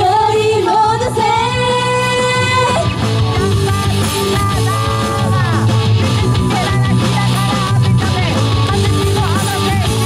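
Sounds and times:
women singing in unison: 0.0s - 3.0s
pop backing track: 0.0s - 10.0s.

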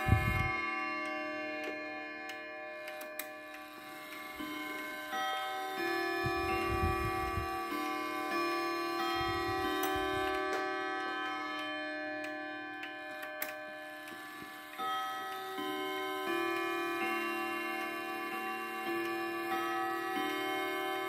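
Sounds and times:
wall clock chime melody: 0.0s - 21.0s.

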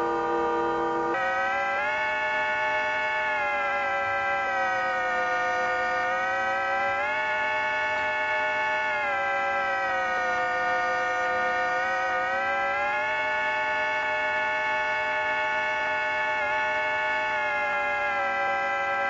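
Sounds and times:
electronic drone sliding in pitch: 0.0s - 19.0s.

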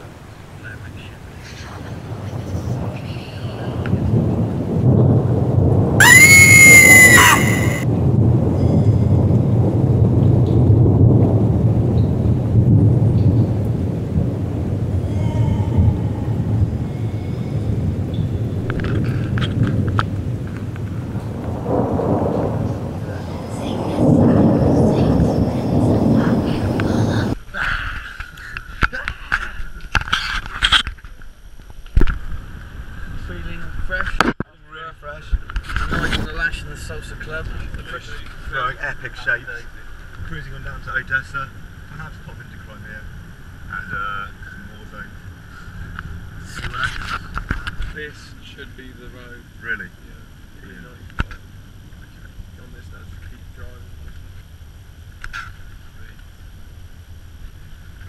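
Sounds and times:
thunder and rain rumble: 0.0s - 27.5s, 35.2s - 58.0s
voices: 6.0s - 7.8s, 15.0s - 17.6s, 23.0s - 29.5s
whining tone: 6.0s - 7.9s.

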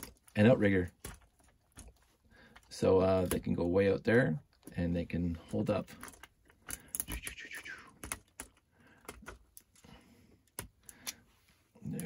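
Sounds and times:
plastic parts clicking: 5.7s - 9.8s.

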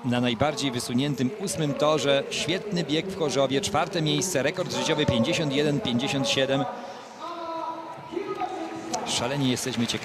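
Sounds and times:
crowd noise: 0.0s - 10.0s
echoing announcer voice: 0.0s - 10.0s.

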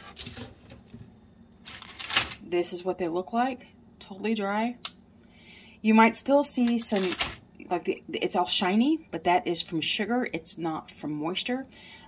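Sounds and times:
paper rustling: 0.0s - 0.8s, 1.6s - 2.4s.

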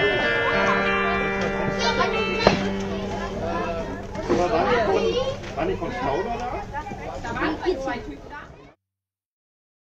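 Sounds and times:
children talking and calling: 0.0s - 8.8s.

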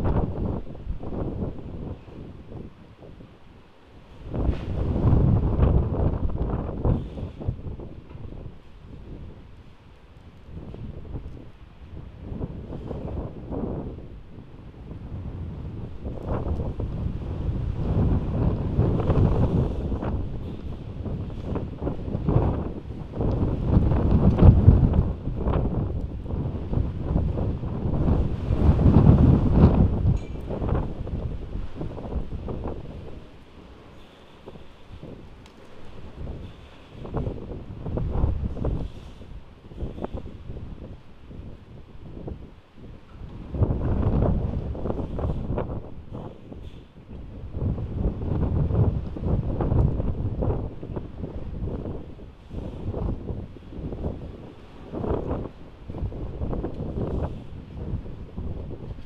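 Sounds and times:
heavy wind buffeting microphone: 0.0s - 59.0s.

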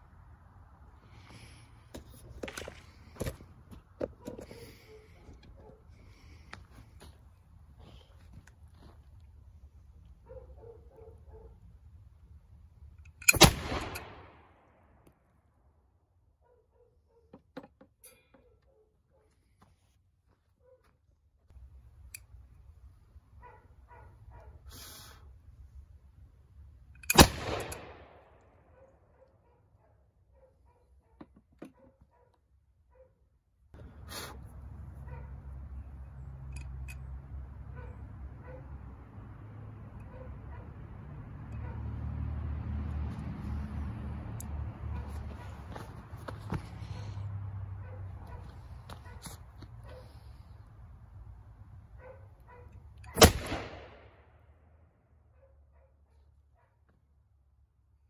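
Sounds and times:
gunshot: 13.3s - 14.4s, 27.1s - 28.2s, 53.2s - 54.2s
pistol shot echoing: 13.3s - 14.4s, 27.1s - 28.2s, 53.2s - 54.1s.

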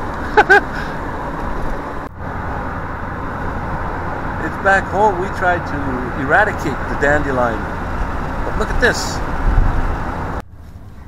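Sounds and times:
in-cab road hum: 0.0s - 11.0s
vehicle engine and tyre rumble: 0.0s - 11.0s.

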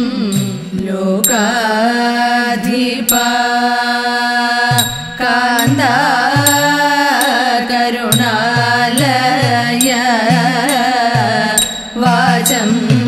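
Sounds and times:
women singing together: 0.0s - 13.0s
sharp ringing strikes: 4.7s - 13.0s.

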